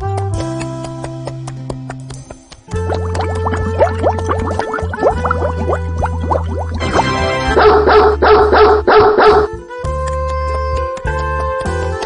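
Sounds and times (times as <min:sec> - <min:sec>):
cheerful background music: 0:00.0 - 0:12.0
dog barking: 0:07.5 - 0:09.5.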